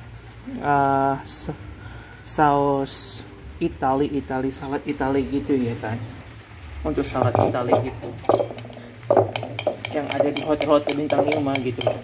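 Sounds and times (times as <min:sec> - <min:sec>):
spoon clinking against glass: 0:07.2 - 0:12.0
spoon stirring thick dressing: 0:07.4 - 0:12.0.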